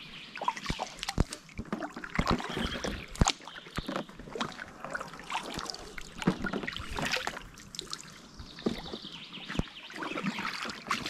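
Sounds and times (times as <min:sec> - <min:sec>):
paddle splashing in water: 0:00.3 - 0:11.0
water dripping off paddle: 0:00.4 - 0:11.0.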